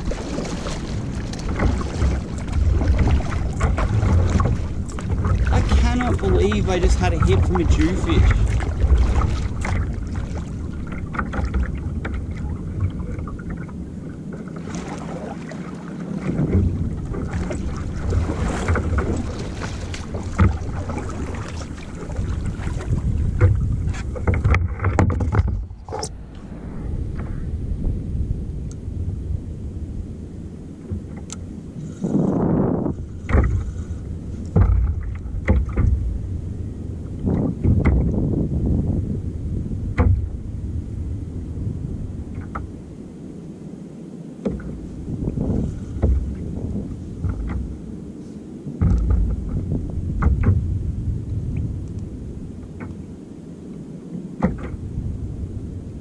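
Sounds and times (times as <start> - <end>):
gear knocking on hull: 0.0 - 14.9, 16.1 - 26.2, 33.2 - 33.8, 34.4 - 36.4, 37.2 - 38.4, 39.9 - 40.4, 44.4 - 47.8, 48.8 - 50.8, 54.4 - 55.0
paddle strokes: 0.0 - 27.5, 30.4 - 40.6, 41.4 - 43.5, 44.3 - 56.0
water splashing against kayak hull: 0.0 - 56.0.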